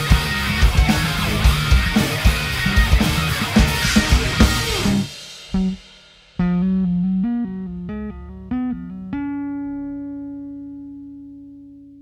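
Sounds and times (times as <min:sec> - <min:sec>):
electric guitar note ringing: 0:06.4 - 0:12.0.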